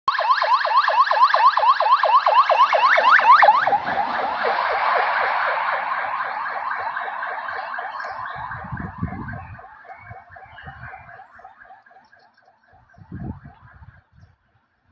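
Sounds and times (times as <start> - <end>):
ambulance siren yelping: 0.1 - 14.2.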